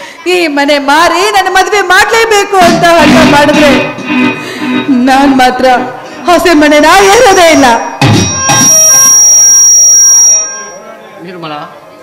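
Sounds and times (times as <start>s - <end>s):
shrill high tone: 7.0s - 10.9s.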